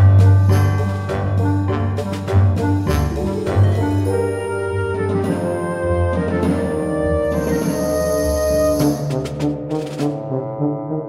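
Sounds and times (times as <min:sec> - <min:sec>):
brass background music: 0:00.0 - 0:11.0.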